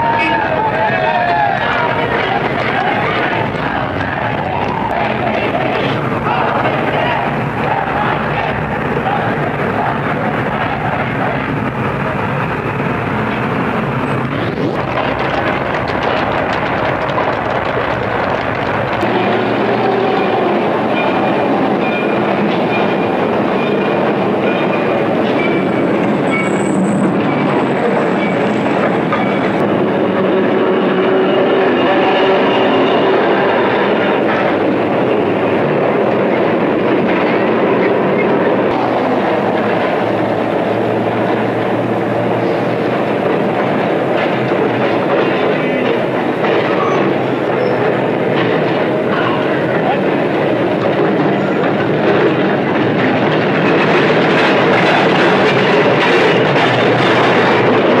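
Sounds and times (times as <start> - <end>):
street noise: 0.0 - 58.0
trolley wheels clattering on rails: 0.0 - 58.0
high wheel squeal: 19.1 - 29.6, 46.6 - 48.0.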